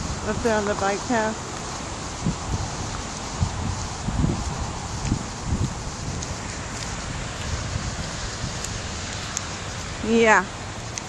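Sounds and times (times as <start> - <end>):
wind rushing over camera: 0.0 - 11.0.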